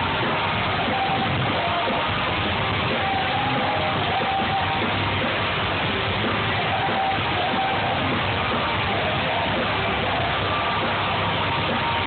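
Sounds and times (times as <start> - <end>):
electric guitars: 0.0 - 12.0
live rock band: 0.0 - 12.0.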